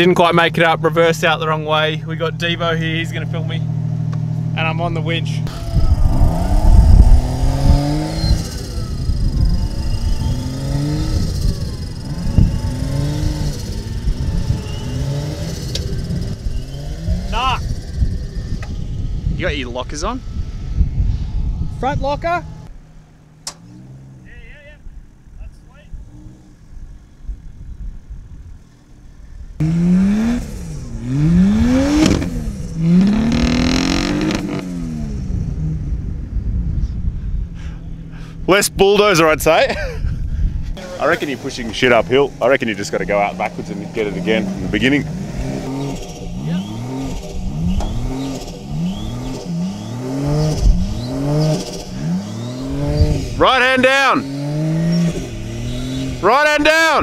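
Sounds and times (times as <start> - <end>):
engine idling and revving: 0.0 - 37.0, 40.5 - 57.0
man shouting: 53.4 - 54.2, 56.2 - 57.0.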